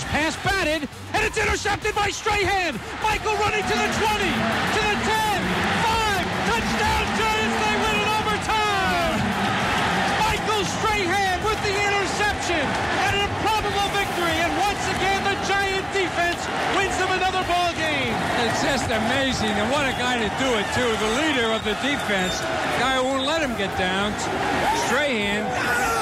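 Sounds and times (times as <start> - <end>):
man announcing excitedly: 0.0 - 26.0
stadium crowd noise: 0.0 - 26.0.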